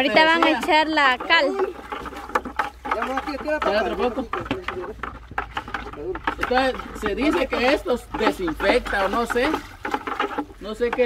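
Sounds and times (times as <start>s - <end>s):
people talking: 0.0s - 1.8s.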